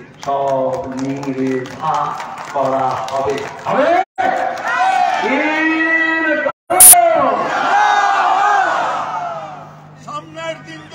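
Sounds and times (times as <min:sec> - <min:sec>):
man shouting over loudspeaker: 0:03.7 - 0:07.7, 0:09.3 - 0:10.9
crowd shouting together: 0:06.8 - 0:09.7.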